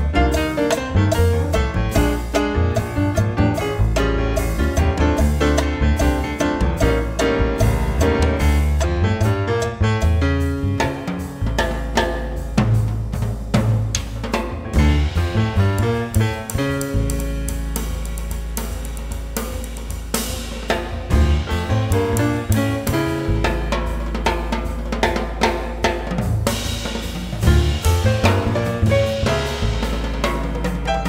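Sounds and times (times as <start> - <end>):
drums and cymbals: 0.0 - 31.0
piano: 0.0 - 31.0
upright bass: 0.0 - 31.0.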